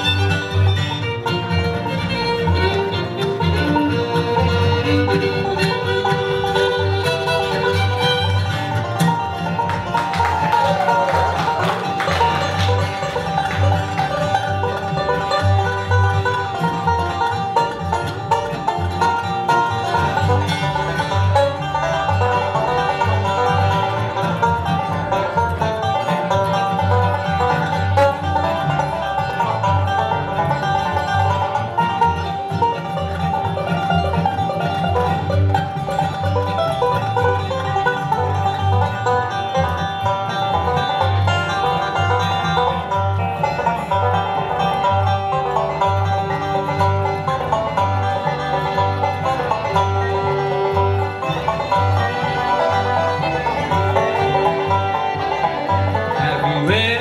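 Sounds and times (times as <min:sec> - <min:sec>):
bluegrass band playing: 0:00.0 - 0:57.0.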